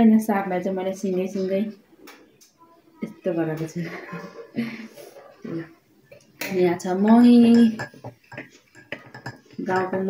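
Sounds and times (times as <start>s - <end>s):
spoon clinking in a mug: 7.4s - 10.0s.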